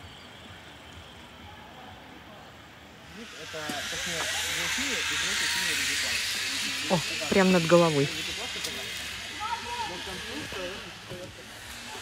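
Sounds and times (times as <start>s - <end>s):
zipline trolley whirring on cable: 0.0s - 12.0s
murmur of voices: 1.4s - 12.0s.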